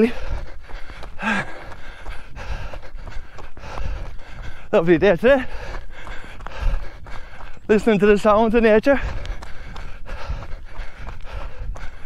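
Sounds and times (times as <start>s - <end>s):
heavy breathing: 0.0s - 12.0s.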